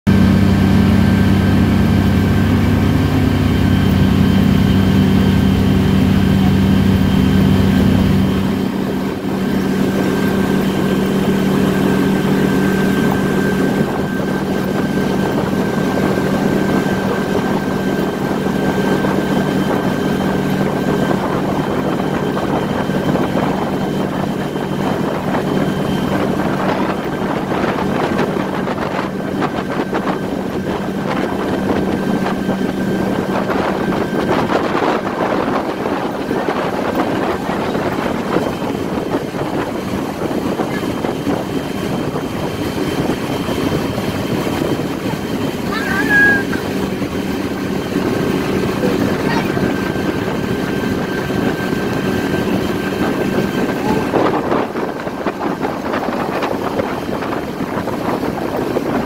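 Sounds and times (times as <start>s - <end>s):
motorboat engine running: 0.1s - 59.0s
water churning and rushing: 0.1s - 59.0s.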